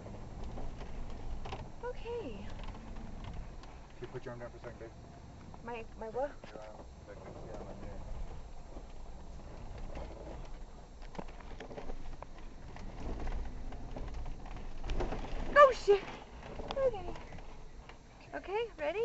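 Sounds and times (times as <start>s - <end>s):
off-road vehicle rumbling: 0.0s - 19.0s
voices talking: 1.8s - 2.6s, 3.9s - 8.4s, 15.6s - 19.0s.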